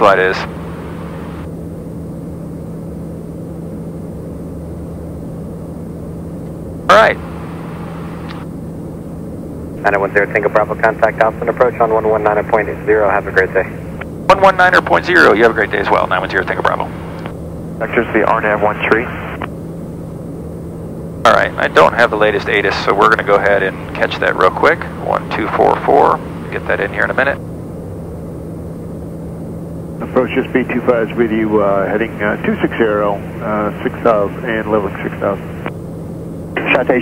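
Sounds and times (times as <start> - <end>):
airplane cabin drone: 0.0 - 37.0
low steady hum: 0.0 - 37.0.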